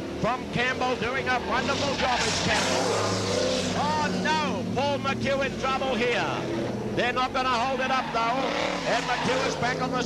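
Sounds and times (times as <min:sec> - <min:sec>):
racing car engines droning: 0:00.0 - 0:10.0
man's voice: 0:00.2 - 0:02.8, 0:03.8 - 0:10.0.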